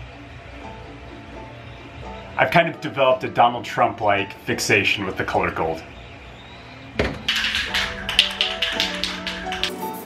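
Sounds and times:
background music: 0.0 - 10.0
spray can rattling: 7.3 - 10.0.

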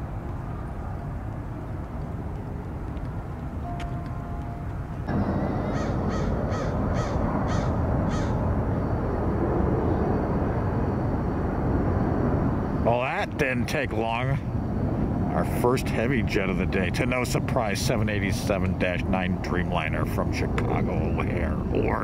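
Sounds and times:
low outdoor rumble: 0.0 - 22.0
crow cawing: 5.4 - 8.4.

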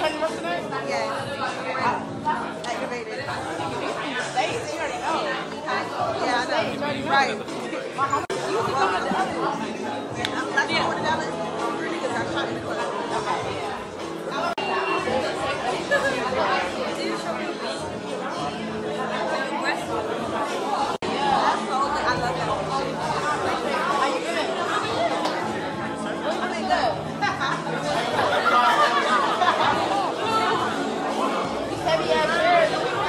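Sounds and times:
babble of many voices: 0.0 - 33.0
background music: 0.0 - 33.0.

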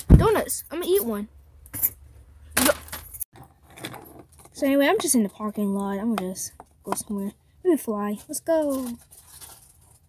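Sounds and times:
plastic toy rustling and clinking: 8.2 - 10.0.

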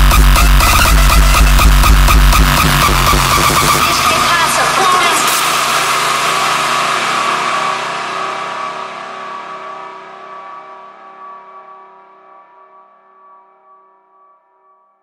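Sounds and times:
pounding kick drum: 0.0 - 9.8
distorted noise sweep: 0.0 - 11.0
sustained synthesizer chord: 0.0 - 14.6.

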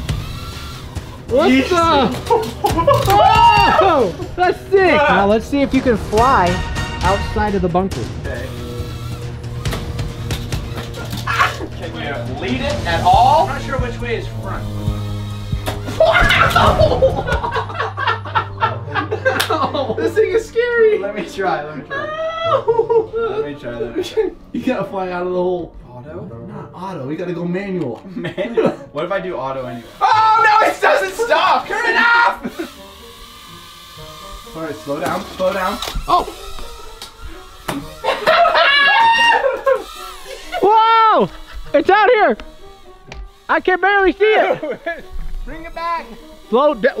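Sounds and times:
background music: 0.0 - 47.0
excited wordless shouts: 1.3 - 5.6, 11.1 - 14.4, 15.9 - 17.7, 20.4 - 23.8, 29.9 - 32.7, 38.0 - 42.4, 43.5 - 44.9.

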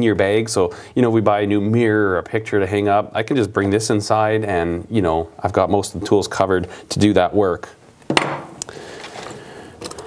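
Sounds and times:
rummaging in tool pouch: 8.9 - 10.0.

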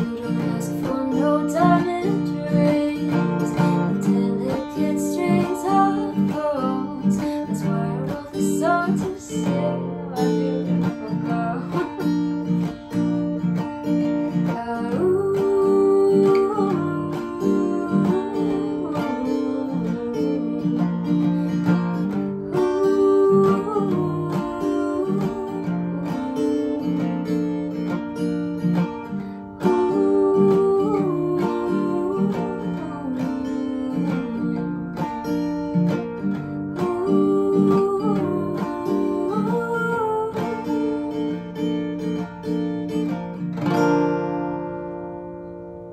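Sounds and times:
acoustic guitar strumming: 0.0 - 45.9.

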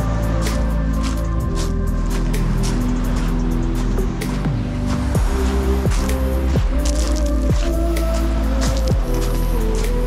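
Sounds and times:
bass-heavy background music: 0.0 - 10.0.

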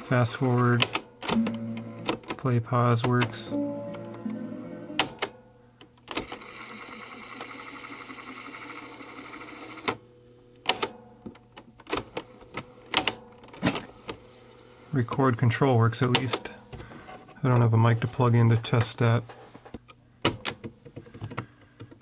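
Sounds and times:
tape deck running: 6.0 - 10.0.

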